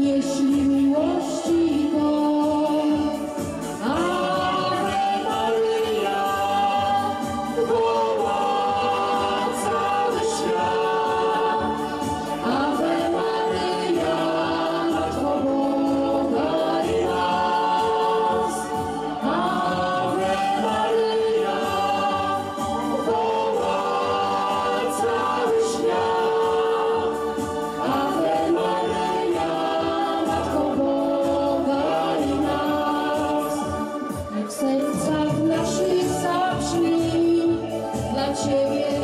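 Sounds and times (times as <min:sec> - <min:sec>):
man and woman singing: 0:03.8 - 0:39.0.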